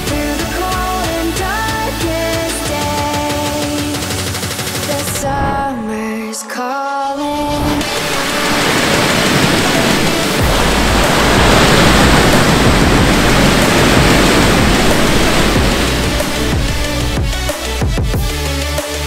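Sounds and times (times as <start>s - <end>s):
electronic music: 0.0s - 19.0s
waves breaking on rocky shore: 7.4s - 17.8s
low bass note: 10.4s - 17.5s.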